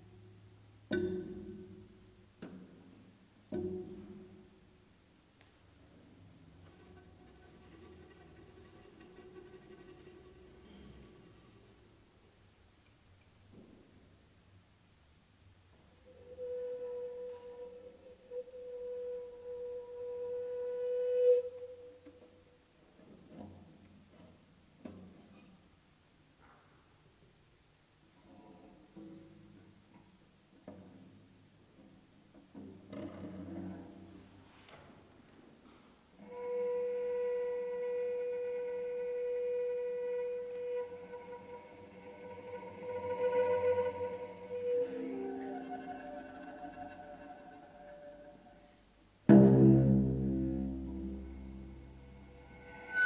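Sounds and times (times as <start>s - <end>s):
held bowed note: 6.0s - 12.0s, 16.0s - 22.4s, 36.2s - 53.0s
sustained instrumental note: 40.6s - 48.6s.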